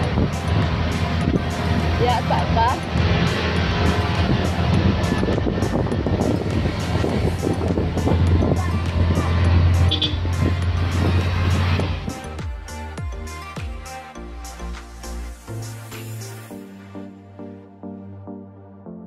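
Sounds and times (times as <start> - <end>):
vehicle road and engine noise: 0.0 - 16.5
music with steady beat: 0.0 - 17.9.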